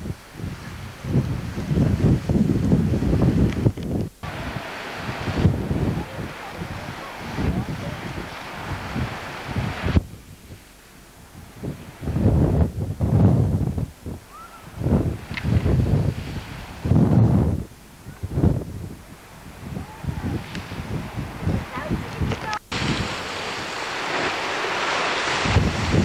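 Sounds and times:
wind buffeting microphone: 0.0 - 26.0
surf breaking: 4.2 - 10.1, 14.3 - 17.6, 18.2 - 26.0.

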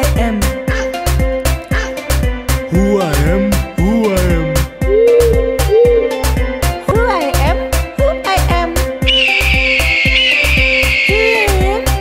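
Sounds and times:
eagle screech: 9.1 - 11.6.

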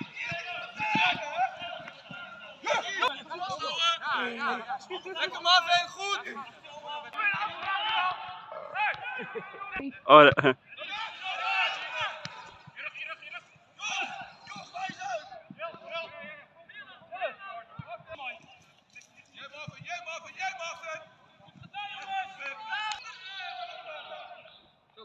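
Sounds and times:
voices calling out and talking: 0.0 - 25.0.

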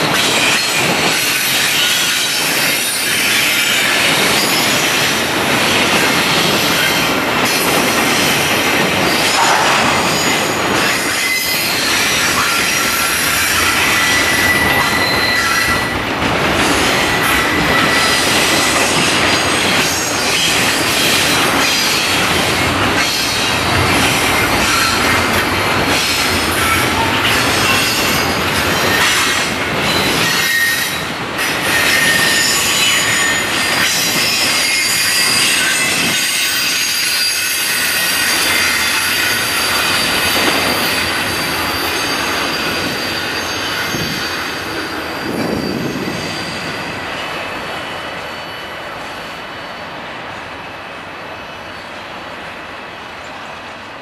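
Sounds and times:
train wheels squealing: 0.0 - 52.2
freight train running past: 0.0 - 54.0.

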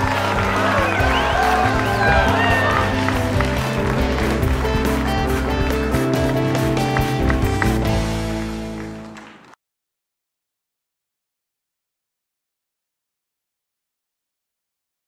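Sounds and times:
music with beat and bass: 0.0 - 9.1.

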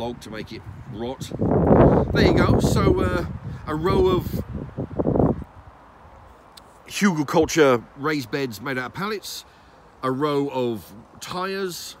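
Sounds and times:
man talking: 0.0 - 4.5, 6.8 - 12.0
outdoor background noise: 0.0 - 12.0.

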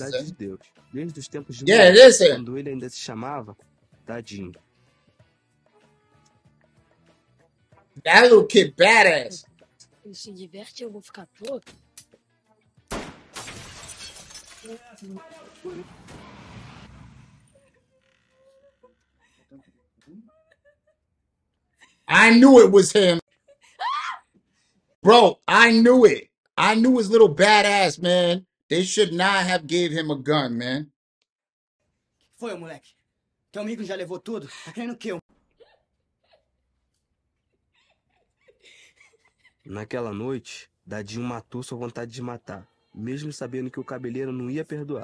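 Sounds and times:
person speaking: 1.6 - 2.4, 8.0 - 9.4, 22.1 - 23.2, 25.0 - 30.3
sharp crack: 12.9 - 13.9
crashing and shattering: 13.3 - 16.7.

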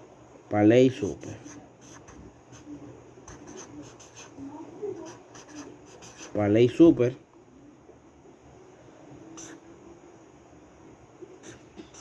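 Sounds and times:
marker scratching on paper: 1.2 - 6.4, 9.4 - 9.6, 11.4 - 12.0.

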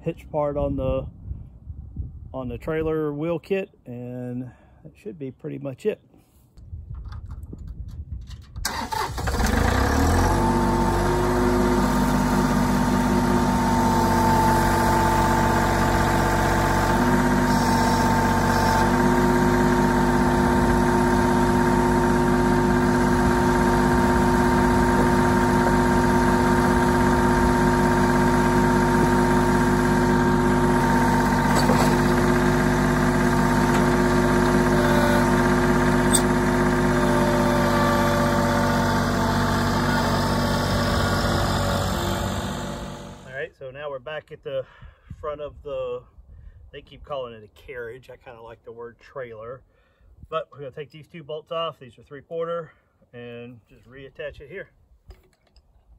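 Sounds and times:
tractor diesel engine running: 8.6 - 43.3.

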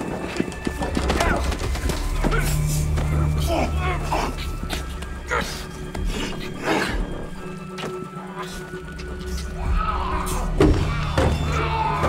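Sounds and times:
low music underscore: 0.0 - 12.0.

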